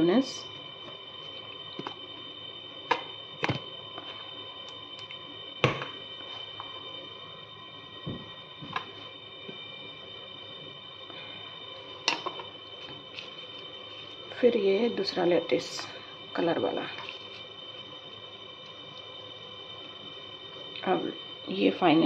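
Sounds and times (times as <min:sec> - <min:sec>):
faint high-pitched whine: 0:00.0 - 0:22.0.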